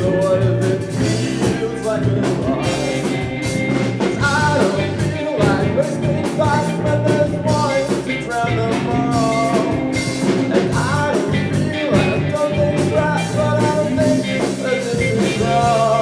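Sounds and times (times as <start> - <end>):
bass guitar: 0.0 - 16.0
drum kit: 0.0 - 16.0
electric guitar: 0.0 - 16.0
person singing lead vocals: 0.0 - 16.0.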